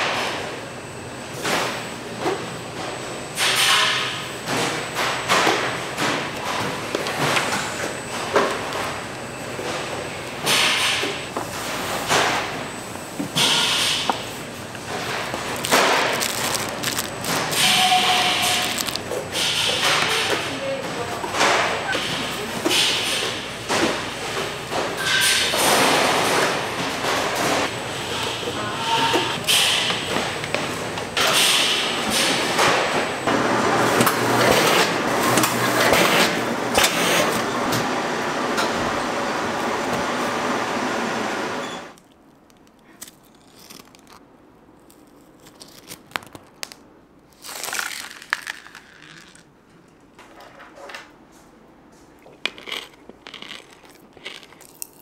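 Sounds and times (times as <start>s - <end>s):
shrink-wrapping machine running: 3.4s - 49.5s, 52.5s - 55.0s
indistinct voices: 27.9s - 30.1s.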